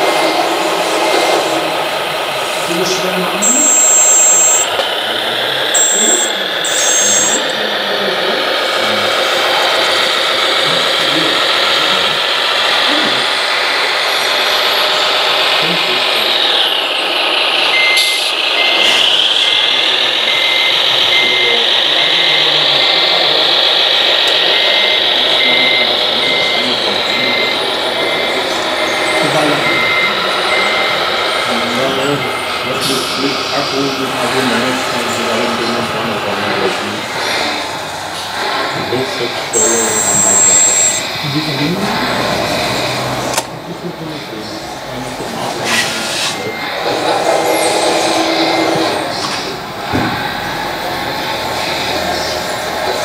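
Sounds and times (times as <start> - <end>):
electronic reversing beeper: 2.8 - 13.3, 17.7 - 37.0, 39.2 - 41.4, 46.3 - 49.2
toy forklift motor whine: 3.3 - 32.6, 39.5 - 41.2.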